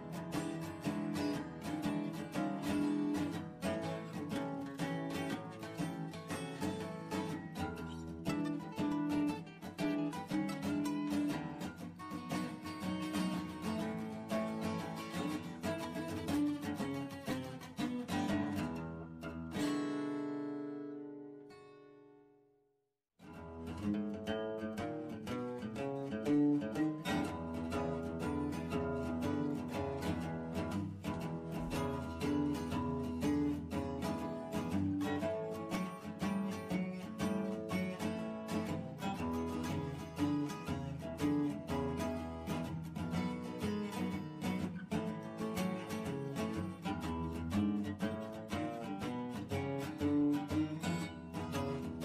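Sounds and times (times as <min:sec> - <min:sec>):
instrumental music: 0:00.0 - 0:22.6, 0:23.2 - 0:52.0.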